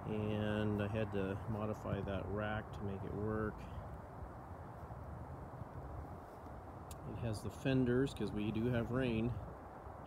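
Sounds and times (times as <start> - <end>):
low background rumble and hiss: 0.0 - 10.0.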